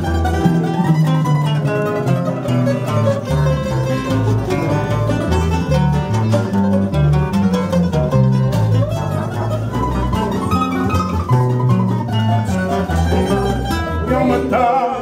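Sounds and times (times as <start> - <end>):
bass line: 0.0 - 15.0
classical guitar accompaniment: 0.0 - 15.0
guitar plucking melody: 0.0 - 15.0.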